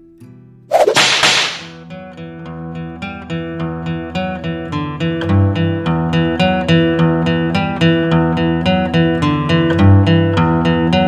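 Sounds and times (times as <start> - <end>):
sharp crack-like hit: 0.7 - 1.8
strummed acoustic guitar: 3.2 - 11.0.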